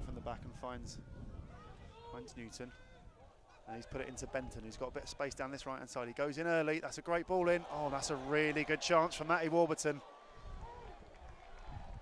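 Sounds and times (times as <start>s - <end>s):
distant shouts: 0.9s - 4.6s, 7.2s - 12.0s.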